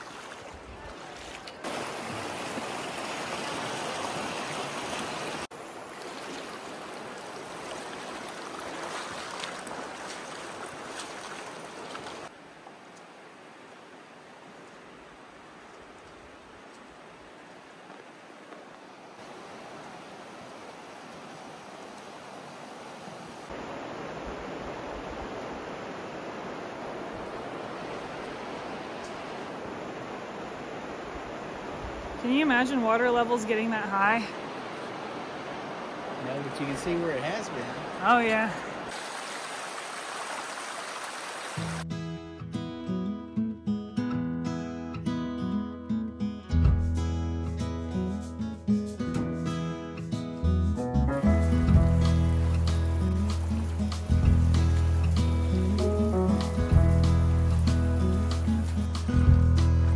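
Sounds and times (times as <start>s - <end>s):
river rushing over rocks: 1.6s - 12.4s, 32.8s - 41.8s.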